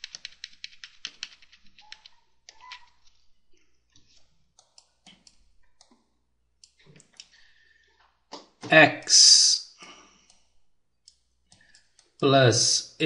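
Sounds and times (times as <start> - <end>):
computer keys clicking: 0.0 - 3.3, 4.0 - 7.4.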